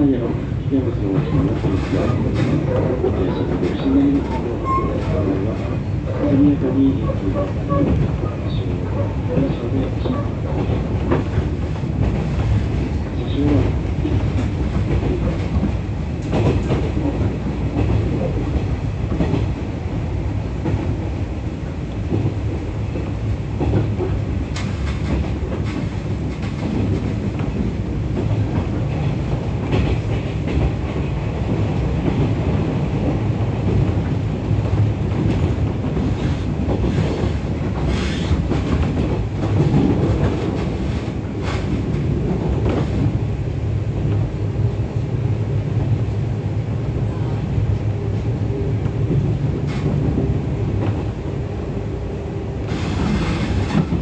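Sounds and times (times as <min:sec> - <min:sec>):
rail joint clicks: 0:00.0 - 0:54.0
train wheels rumbling on rail: 0:00.0 - 0:54.0.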